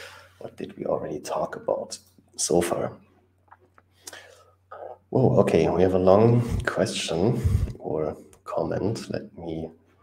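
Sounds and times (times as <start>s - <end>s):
low steady hum: 0.0s - 10.0s
man murmuring and whispering: 6.4s - 7.9s.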